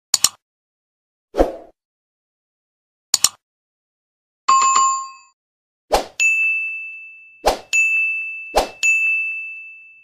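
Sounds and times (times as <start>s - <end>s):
bright ringing ding: 6.2s - 10.0s.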